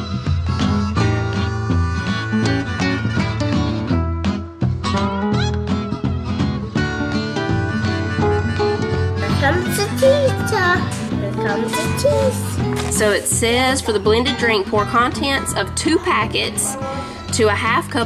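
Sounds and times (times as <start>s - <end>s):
instrumental guitar music: 0.0s - 18.0s.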